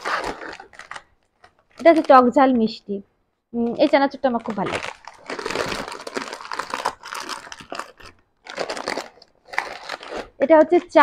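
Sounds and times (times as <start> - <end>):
plastic packets crinkling: 0.0 - 2.6, 3.8 - 11.0.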